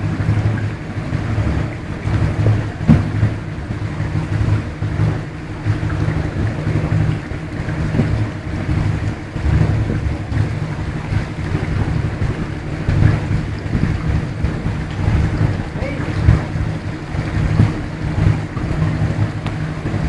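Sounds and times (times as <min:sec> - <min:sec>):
boat engine droning: 0:00.0 - 0:20.0.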